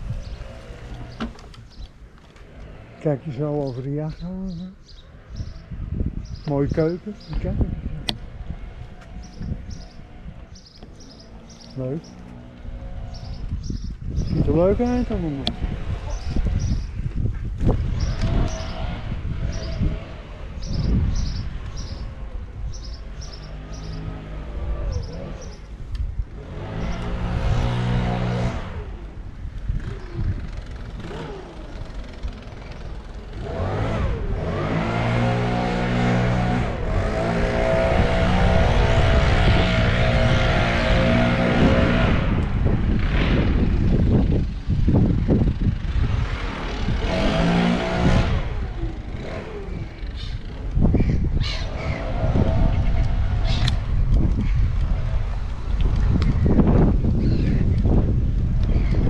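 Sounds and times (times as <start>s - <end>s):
small vehicle motor revving: 0.0s - 59.0s
wind rumble on microphone: 0.0s - 59.0s.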